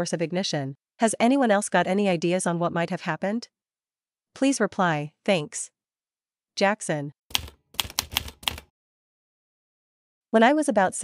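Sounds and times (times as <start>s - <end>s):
typewriter keystrokes: 7.3s - 8.7s.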